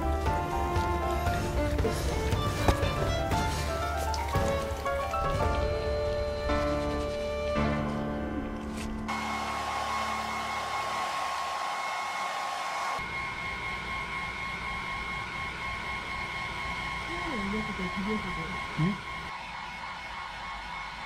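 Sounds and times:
music: 0.0 - 9.1
hair dryer running: 9.1 - 21.0.

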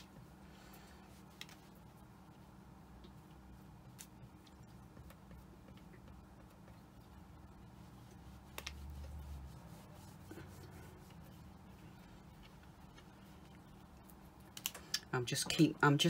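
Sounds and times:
faint low hum: 0.0 - 16.0.

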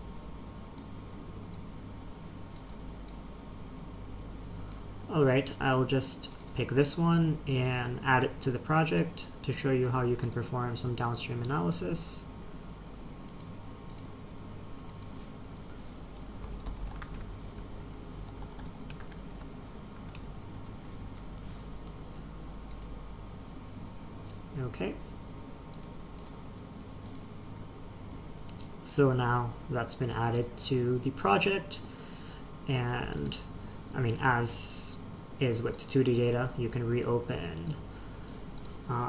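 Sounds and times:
low steady hum: 0.0 - 39.0
computer mouse clicks: 2.5 - 3.2, 13.3 - 14.1, 14.9 - 17.3, 22.7 - 22.9, 25.7 - 26.4, 27.0 - 27.3, 28.5 - 28.7, 38.2 - 38.8
keyboard typing: 6.3 - 6.7, 14.8 - 21.3.

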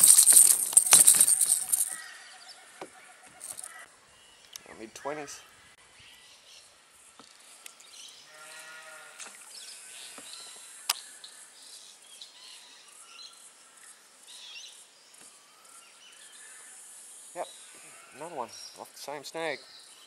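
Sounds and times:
birds chirping: 0.0 - 2.0, 3.4 - 3.8.

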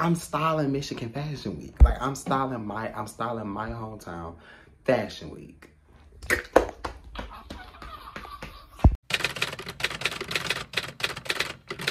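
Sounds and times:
rapid typewriter-like clicking: 9.0 - 11.9.

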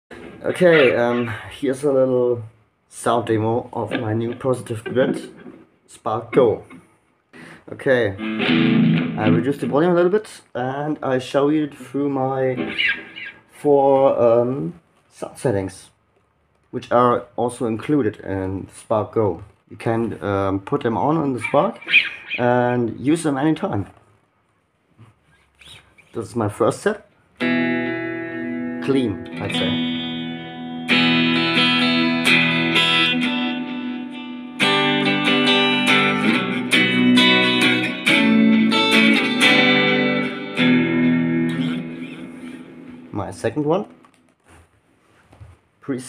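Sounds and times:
faint handling sounds: 43.9 - 45.8.

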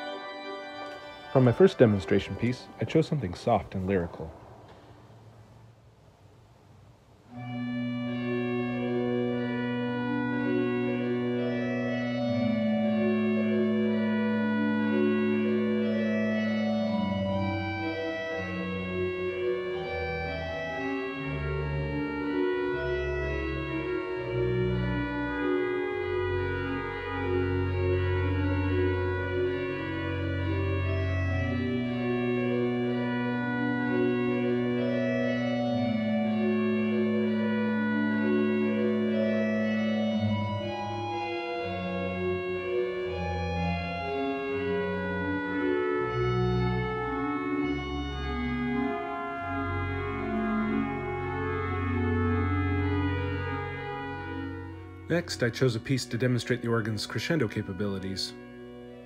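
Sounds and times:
pipe organ playing slow chords: 0.0 - 59.0.

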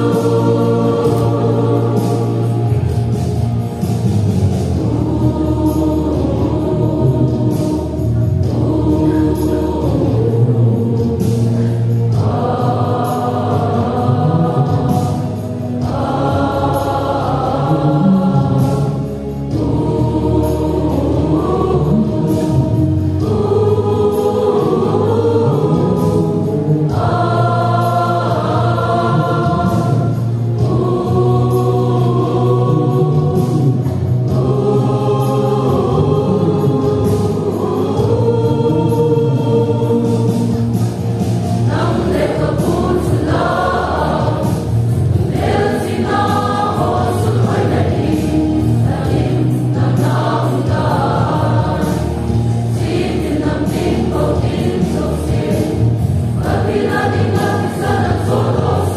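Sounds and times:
choir singing a hymn: 0.0 - 58.9.

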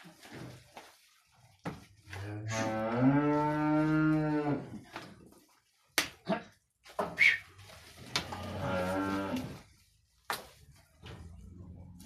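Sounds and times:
bull mooing: 2.2 - 4.6, 8.2 - 9.6.

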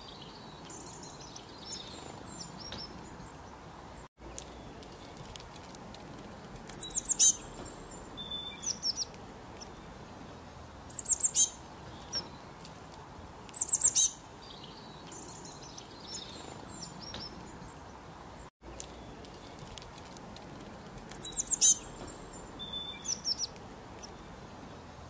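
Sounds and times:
songbird chirping: 0.0 - 25.0.

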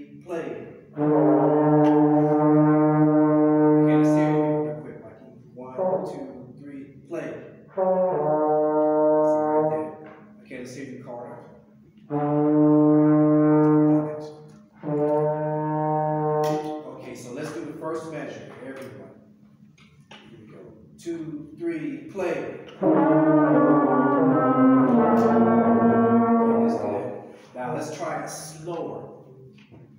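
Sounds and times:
brass section holding notes: 0.9 - 5.0, 5.6 - 6.5, 7.7 - 10.1, 12.0 - 17.0, 22.7 - 27.9.

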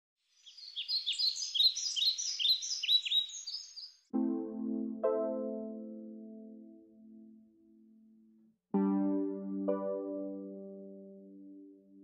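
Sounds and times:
short high bird chirps: 0.4 - 4.0.

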